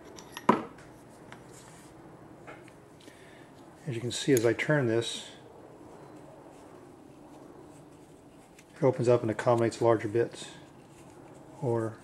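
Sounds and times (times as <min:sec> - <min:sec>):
metallic click with ring: 0:00.0 - 0:00.5.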